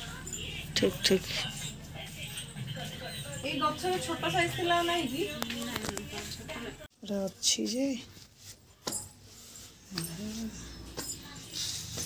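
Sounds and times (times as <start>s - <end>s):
woman speaking: 0.0s - 7.6s.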